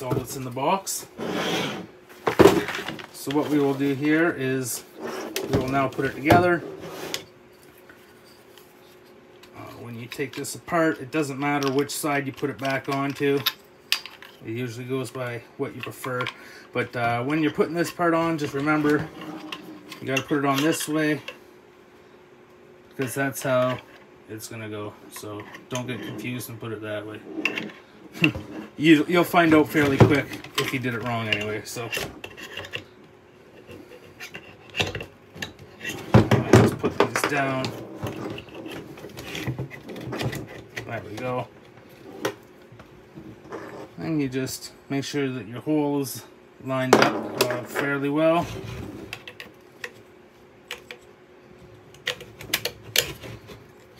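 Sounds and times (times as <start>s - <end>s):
plastic parts rubbing: 33.6s - 42.4s.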